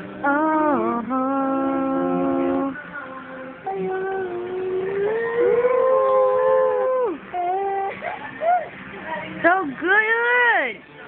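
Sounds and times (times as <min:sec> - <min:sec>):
boy singing a long note: 0:00.2 - 0:02.8, 0:03.6 - 0:07.9.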